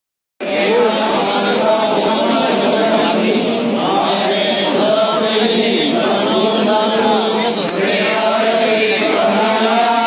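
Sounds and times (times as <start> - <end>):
group chanting: 0.4 - 10.0.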